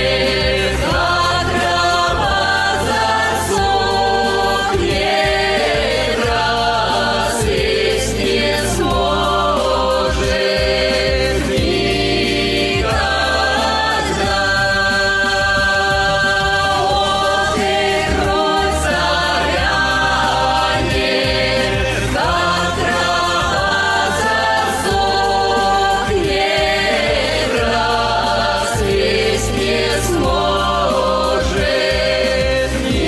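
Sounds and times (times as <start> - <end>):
choir singing long notes: 0.0 - 33.0
musical backing: 0.0 - 33.0.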